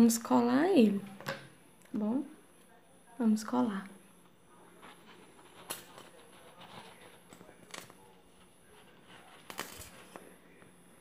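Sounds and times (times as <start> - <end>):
paper rustling: 4.8 - 10.4.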